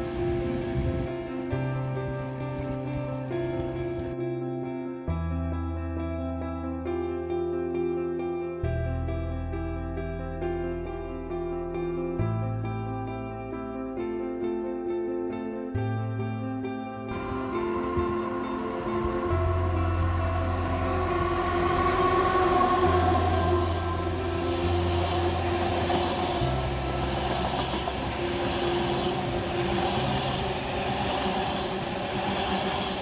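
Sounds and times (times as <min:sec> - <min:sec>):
music playing: 0:17.0 - 0:33.0
train wheels rolling on rails: 0:17.1 - 0:33.0.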